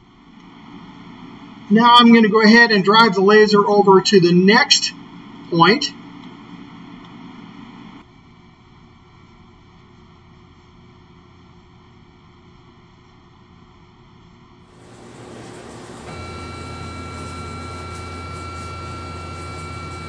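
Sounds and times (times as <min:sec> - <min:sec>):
laser engraver machine whir: 0:14.7 - 0:20.0
high whines: 0:14.8 - 0:20.0
low hum: 0:14.8 - 0:20.0.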